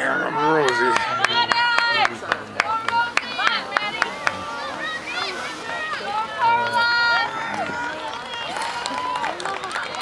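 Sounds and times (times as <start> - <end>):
spectators cheering: 0.0 - 10.0.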